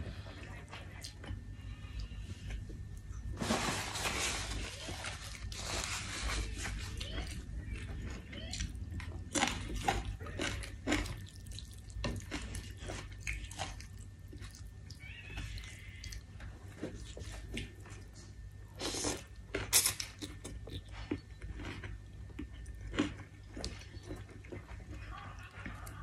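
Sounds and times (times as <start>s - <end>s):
person chewing: 6.9s - 26.0s.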